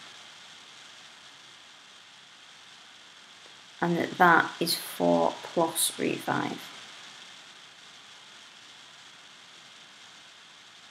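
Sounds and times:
faint microphone hiss: 0.0s - 10.9s.

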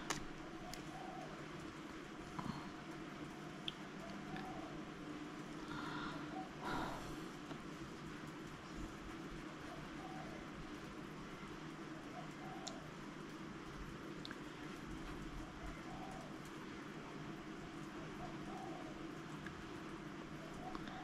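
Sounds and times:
low room hum: 0.0s - 21.0s
tiny ticks: 1.6s - 4.6s, 12.3s - 16.6s, 19.1s - 21.0s.

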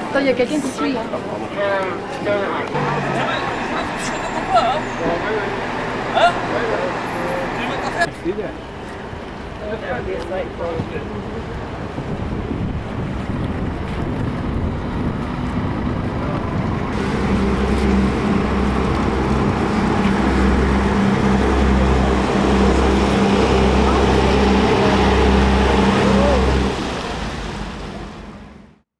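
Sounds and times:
boat engine drone: 1.2s - 28.8s
wind noise on microphone: 10.8s - 25.1s.

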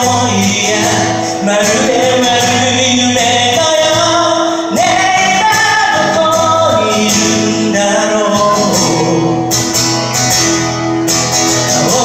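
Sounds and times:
man singing: 0.0s - 9.9s, 11.4s - 12.0s
acoustic guitar: 0.0s - 12.0s.

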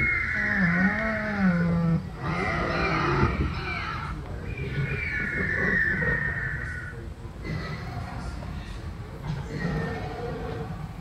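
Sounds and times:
dinosaur roars over loudspeakers: 0.0s - 4.2s.

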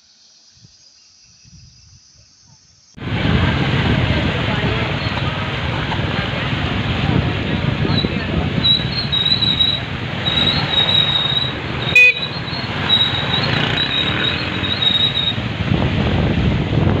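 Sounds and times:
motorcycle engines running: 3.0s - 17.0s
horn beep: 8.7s - 15.4s.

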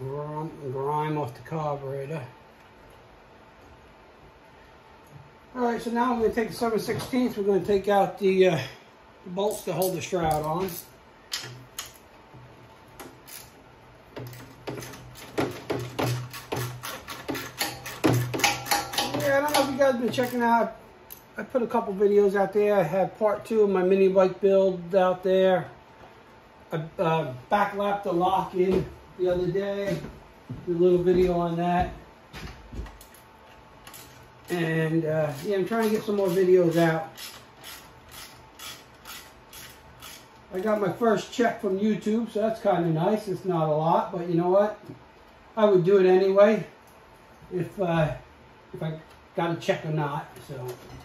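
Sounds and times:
ratchet wrench clicking: 13.3s - 13.6s, 16.3s - 20.4s, 37.1s - 40.3s
socket ratchet clicking: 37.1s - 40.3s.

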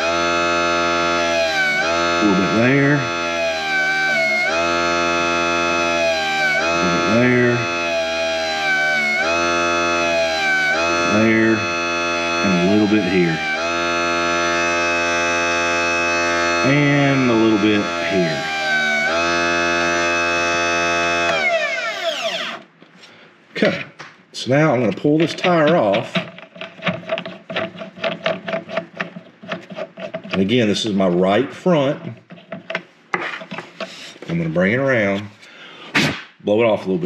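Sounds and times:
electric motor whining: 0.0s - 22.7s.

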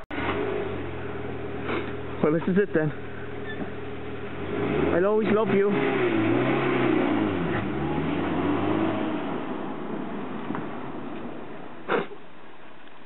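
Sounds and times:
car engine driving off: 0.0s - 12.2s.

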